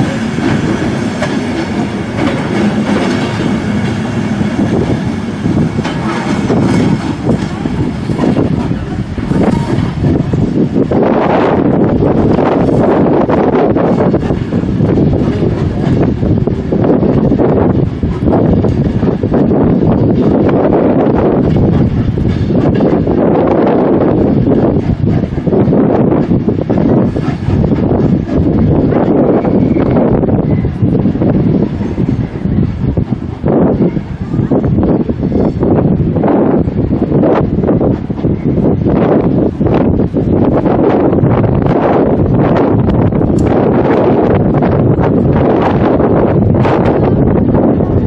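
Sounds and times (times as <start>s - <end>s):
steam train departing: 0.0s - 48.0s
wind buffeting microphone: 0.0s - 48.0s.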